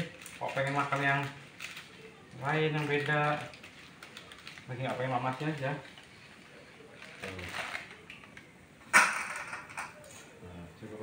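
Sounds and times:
dry spaghetti clattering: 0:00.0 - 0:10.2.

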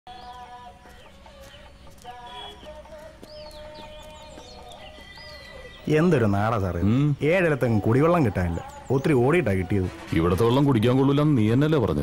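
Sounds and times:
small birds chirping: 0:00.1 - 0:12.0
soft background music: 0:00.1 - 0:12.0.

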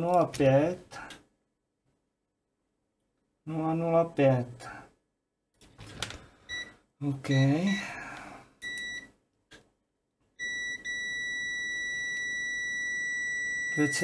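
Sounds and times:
multimeter beeping: 0:08.6 - 0:09.1, 0:10.4 - 0:14.0.

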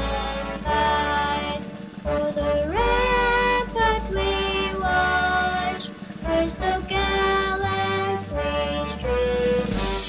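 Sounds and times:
girl singing slow song: 0:00.0 - 0:10.0.

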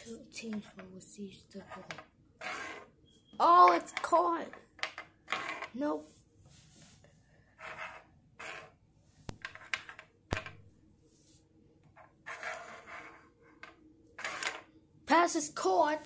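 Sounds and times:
soft rustling: 0:05.4 - 0:09.4.

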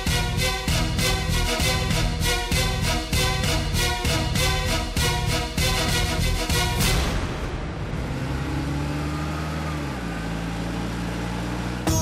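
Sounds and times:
vehicle engine running: 0:00.0 - 0:12.0.

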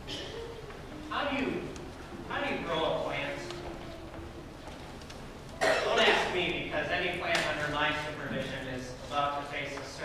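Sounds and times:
man's voice: 0:01.1 - 0:03.7, 0:05.6 - 0:10.0
sharp cough: 0:05.6 - 0:06.3.

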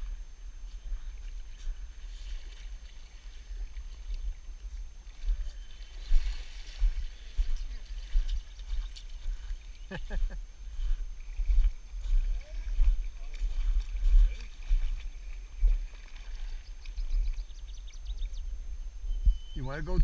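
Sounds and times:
water splashing around legs: 0:01.2 - 0:17.7
wind buffeting microphone: 0:03.4 - 0:09.7, 0:10.6 - 0:20.0.

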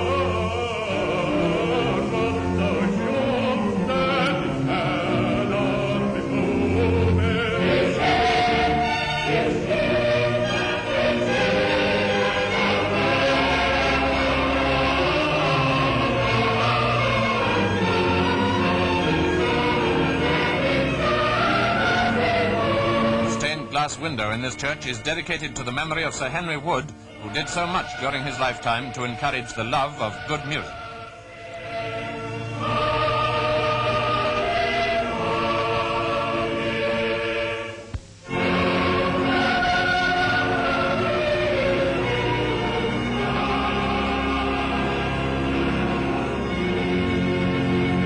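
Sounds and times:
church choir singing chords: 0:00.0 - 0:48.0.

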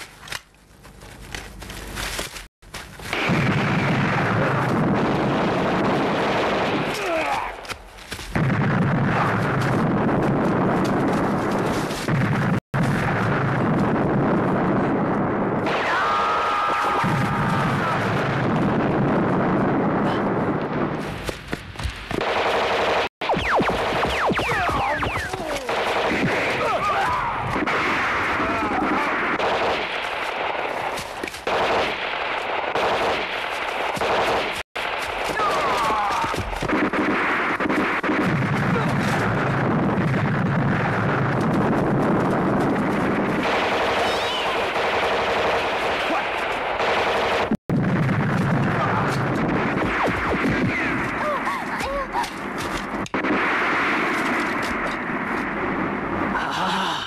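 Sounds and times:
machine-gun bursts: 0:22.2 - 0:26.6, 0:43.4 - 0:47.6
rifle and pistol shots: 0:22.2 - 0:26.8.

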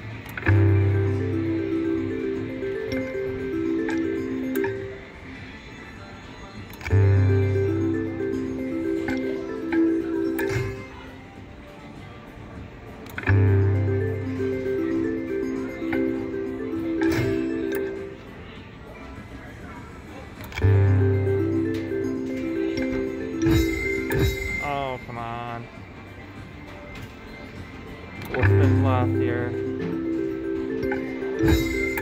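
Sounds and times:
slot machine clicks: 0:00.0 - 0:05.2, 0:06.7 - 0:11.1, 0:13.0 - 0:18.3, 0:20.4 - 0:25.6, 0:28.2 - 0:32.0
slot machine reel-spin music: 0:00.0 - 0:11.7, 0:12.8 - 0:18.6, 0:20.4 - 0:25.8, 0:27.4 - 0:32.0
casino background noise: 0:00.0 - 0:32.0.

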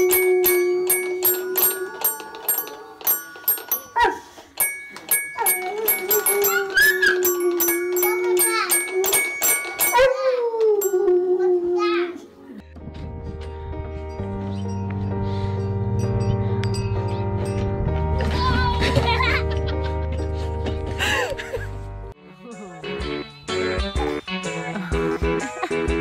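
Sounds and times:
toy xylophone struck rapidly: 0:00.0 - 0:10.1
dog howling: 0:01.2 - 0:04.3, 0:05.5 - 0:09.2, 0:09.8 - 0:12.1
background music: 0:05.7 - 0:26.0.

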